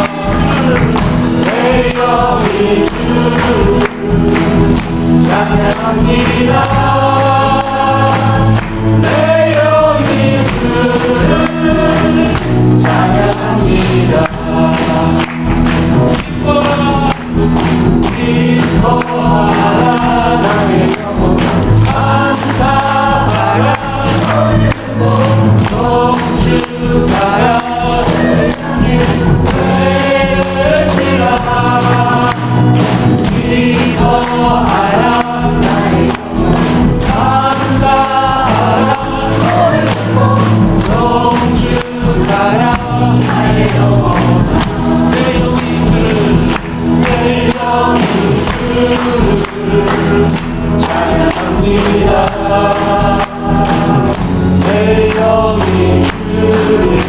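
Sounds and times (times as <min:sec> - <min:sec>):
choir singing a hymn: 0:00.0 - 0:57.0
guitars playing: 0:00.0 - 0:57.0
instrumental accompaniment: 0:00.0 - 0:57.0
man singing lead: 0:00.0 - 0:57.0.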